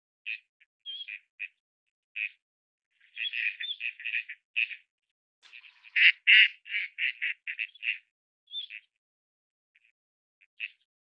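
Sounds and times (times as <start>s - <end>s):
duck calling: 3.1s - 4.8s, 5.4s - 8.8s.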